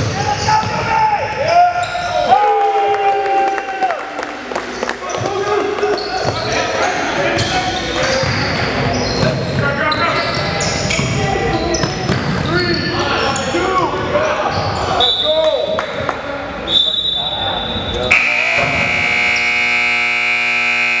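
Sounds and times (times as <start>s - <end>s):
sneakers squeaking: 1.4s - 2.2s, 5.1s - 13.6s, 14.2s - 15.3s
players' voices: 4.3s - 20.8s
scoreboard horn: 18.1s - 21.0s.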